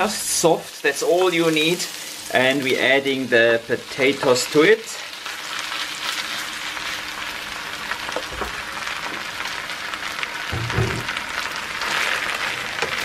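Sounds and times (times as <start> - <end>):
potato sizzling in a frying pan: 0.0 - 13.0.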